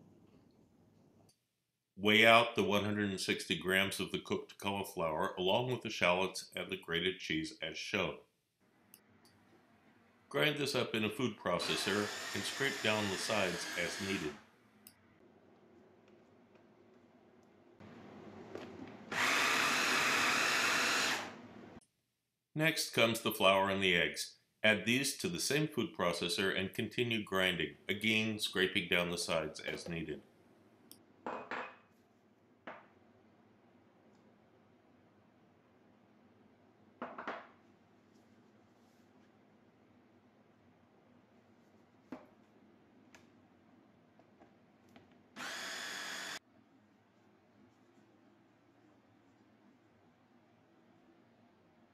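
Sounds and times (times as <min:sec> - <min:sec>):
food processor motor grinding: 0:11.6 - 0:14.4, 0:19.1 - 0:21.4, 0:45.4 - 0:46.4.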